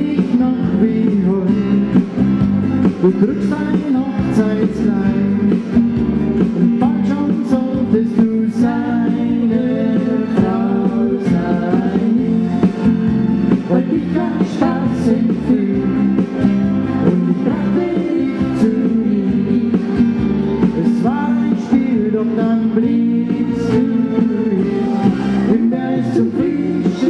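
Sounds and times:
person singing: 0.0 - 2.2, 2.9 - 5.7, 6.5 - 12.8, 13.5 - 16.4, 17.0 - 27.0
live band playing pop song: 0.0 - 27.0.

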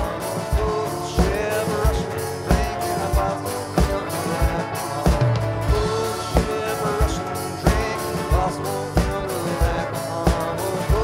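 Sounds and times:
folk rock band playing: 0.0 - 11.0
person singing: 0.0 - 11.0.

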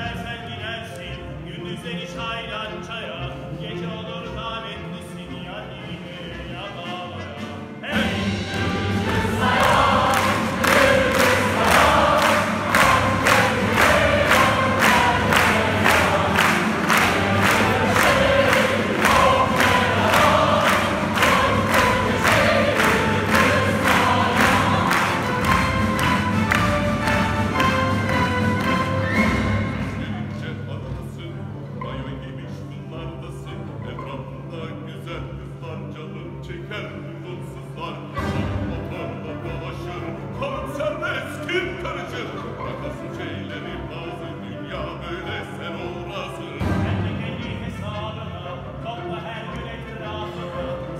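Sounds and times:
orchestra and choir performing: 0.0 - 50.9
audience clapping in time: 8.5 - 29.9.

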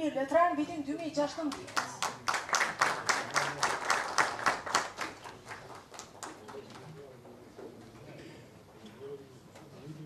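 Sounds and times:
audience applauding: 1.8 - 6.6.

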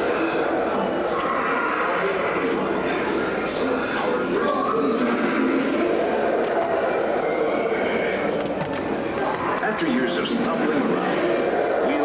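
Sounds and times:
constant background noise: 0.0 - 12.0
indistinct voices: 0.0 - 12.0.

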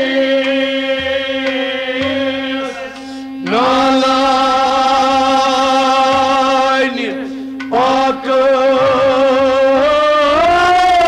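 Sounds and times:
man singing: 0.0 - 11.0
steady drone: 0.0 - 11.0.

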